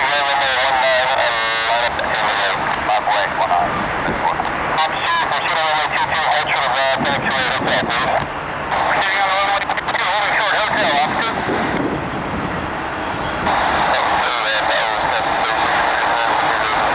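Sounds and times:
distorted radio voice: 0:00.0 - 0:11.6, 0:13.4 - 0:16.9
steady radio hiss: 0:00.0 - 0:16.9.

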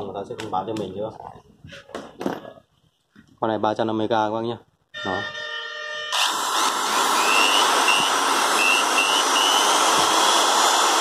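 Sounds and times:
electric drill running: 0:06.1 - 0:11.0.

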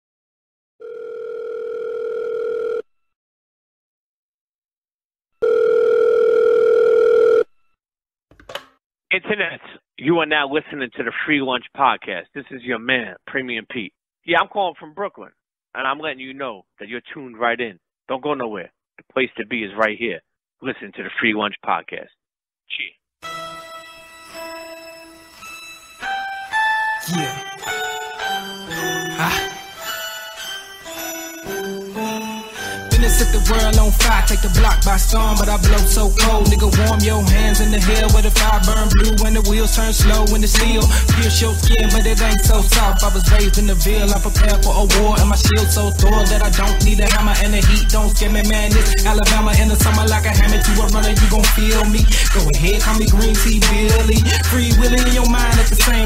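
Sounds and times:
telephone ringback tone: 0:00.8 - 0:02.9, 0:05.4 - 0:07.5
intro music: 0:23.2 - 0:56.0.

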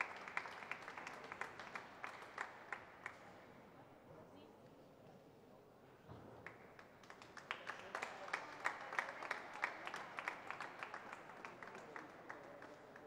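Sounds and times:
audience clapping: 0:00.0 - 0:03.2, 0:06.4 - 0:13.0.

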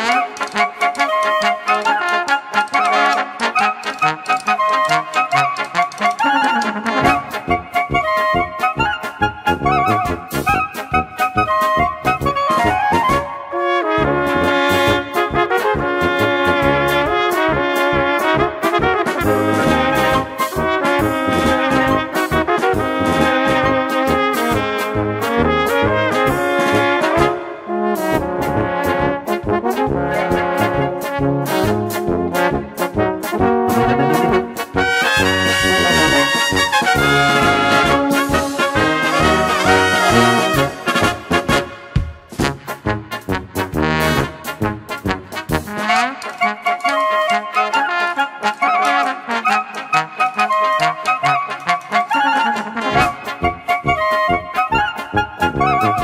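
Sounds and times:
wind melody with trills: 0:00.0 - 0:13.6, 0:46.2 - 0:56.0
brass band playing polka: 0:00.0 - 0:56.0
tubas oom-pah accompaniment: 0:00.0 - 0:56.0.

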